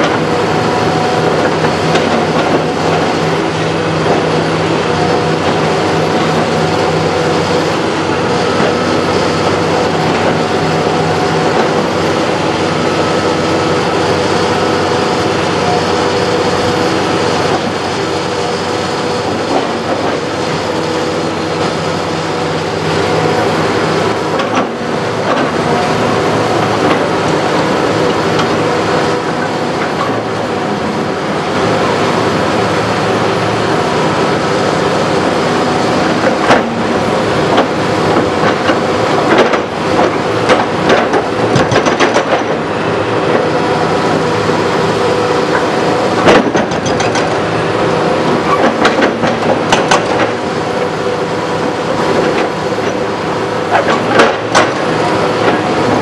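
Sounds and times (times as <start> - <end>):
hydraulic breaker hammering concrete: 0.0 - 14.5, 24.0 - 30.3, 35.8 - 43.5, 45.5 - 47.6, 48.3 - 50.8, 51.7 - 56.0
excavator diesel engine running: 0.0 - 56.0.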